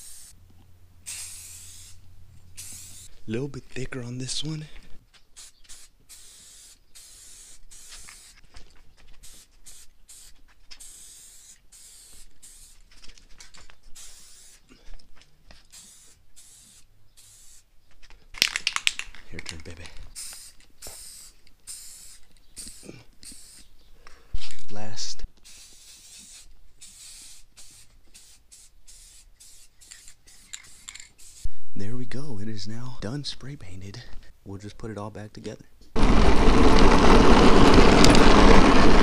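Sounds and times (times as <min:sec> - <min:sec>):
spray paint can hissing: 0:00.0 - 0:00.4, 0:01.0 - 0:03.1, 0:05.3 - 0:08.4, 0:09.1 - 0:13.0, 0:13.9 - 0:14.7, 0:15.5 - 0:17.7, 0:20.1 - 0:23.7, 0:25.4 - 0:31.5.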